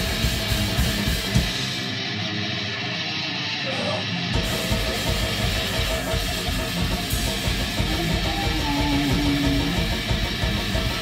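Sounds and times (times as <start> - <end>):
electric guitar: 0.0 - 11.0
fast drum hits: 4.4 - 11.0.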